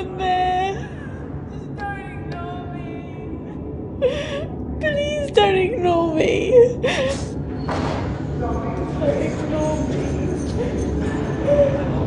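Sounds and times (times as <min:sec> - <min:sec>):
woman crying: 0:00.0 - 0:07.4.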